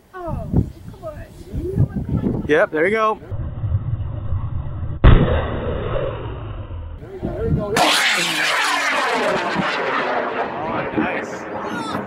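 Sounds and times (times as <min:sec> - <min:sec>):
rocket motor low rumble: 0:03.2 - 0:12.0.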